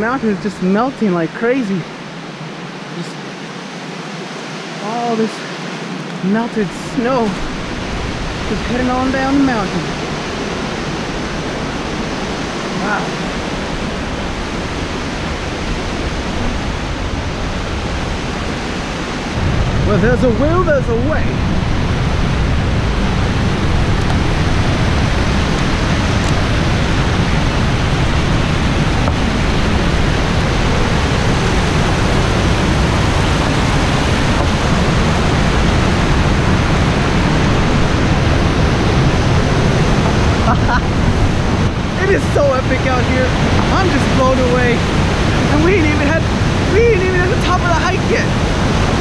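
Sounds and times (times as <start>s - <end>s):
waterfall rushing over rocks: 0.0s - 49.0s.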